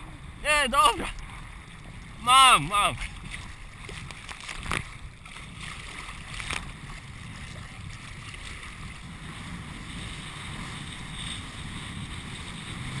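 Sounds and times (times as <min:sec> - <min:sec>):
choppy water rushing and splashing: 0:00.0 - 0:13.0
wind rumbling on microphone: 0:00.0 - 0:13.0.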